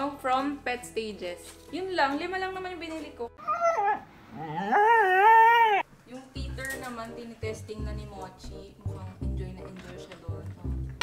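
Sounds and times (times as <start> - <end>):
music: 0.0 - 4.0, 6.1 - 11.0
husky howling: 3.4 - 5.9.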